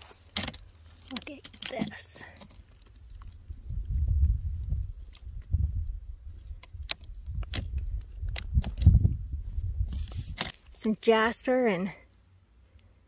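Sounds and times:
rock turned over in hand: 0.0s - 11.5s.

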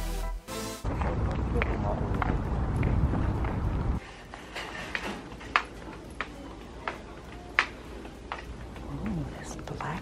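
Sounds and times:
footsteps clicking on hard floor: 1.0s - 10.0s
faint voices talking: 5.3s - 10.0s.

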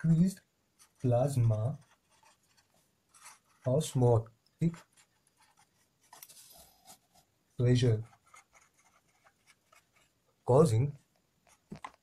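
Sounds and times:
pen scratching on paper: 0.8s - 3.7s, 4.6s - 7.2s, 7.9s - 10.1s.

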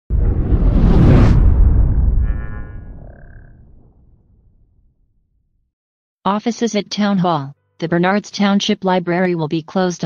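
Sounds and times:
deep boom rumble: 0.1s - 5.6s.

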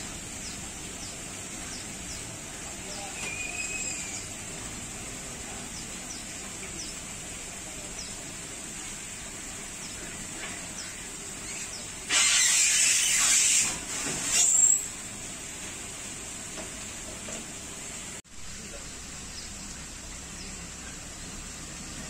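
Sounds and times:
loud hiss: 0.0s - 17.0s
steady background noise: 0.0s - 22.0s.

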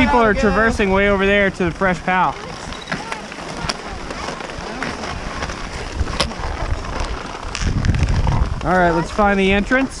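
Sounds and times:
low rumbles: 0.0s - 10.0s
skis and poles on snow: 0.0s - 10.0s
wind buffeting microphone: 0.0s - 10.0s.

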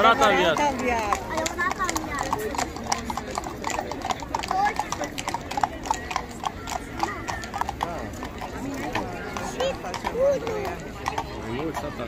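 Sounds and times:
crowd voices: 0.0s - 12.0s
horse hooves on asphalt: 0.0s - 12.0s.

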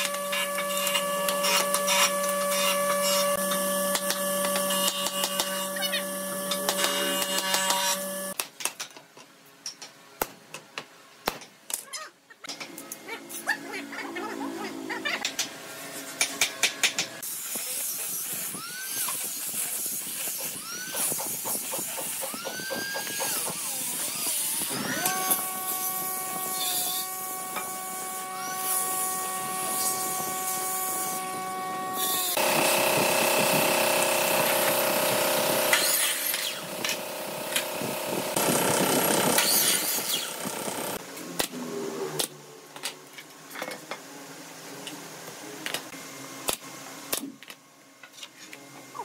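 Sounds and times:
angle grinder sanding wood: 0.0s - 8.4s, 17.2s - 41.0s.

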